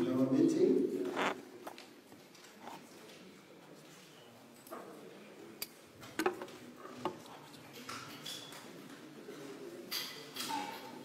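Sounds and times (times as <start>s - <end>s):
faint background murmur: 0.0s - 11.0s.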